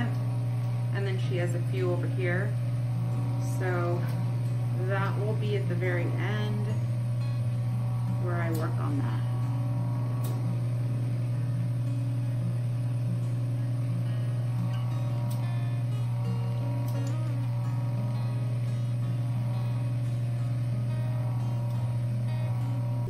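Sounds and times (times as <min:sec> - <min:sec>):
suction pump humming: 0:00.0 - 0:23.0
soft acoustic guitar music: 0:03.9 - 0:10.7, 0:11.5 - 0:23.0.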